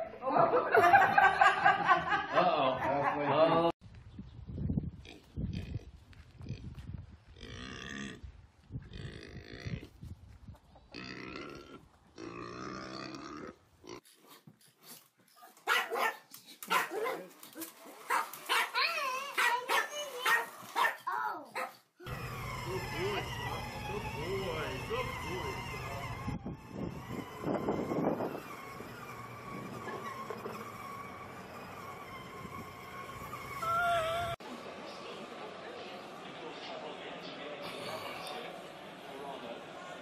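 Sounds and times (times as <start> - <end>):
pig grunting: 10.9 - 14.1
pig squealing: 22.1 - 34.4
high wavering whines and yelps: 27.4 - 34.4.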